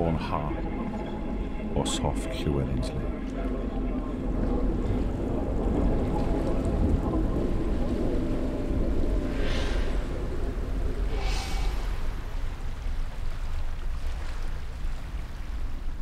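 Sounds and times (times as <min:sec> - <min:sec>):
wind and water rumbling: 0:00.0 - 0:16.0
hissing rush: 0:09.3 - 0:12.6.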